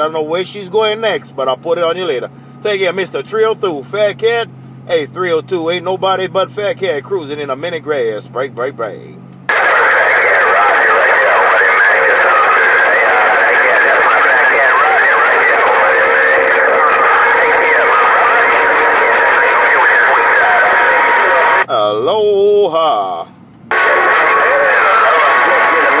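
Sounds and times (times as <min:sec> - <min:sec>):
overlapping distant voices: 0:09.5 - 0:21.6, 0:23.7 - 0:26.0
radio static: 0:09.5 - 0:21.6, 0:23.7 - 0:26.0.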